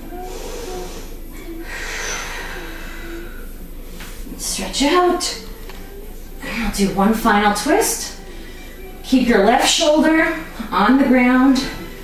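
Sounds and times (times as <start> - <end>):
person breathing: 0.1 - 4.1.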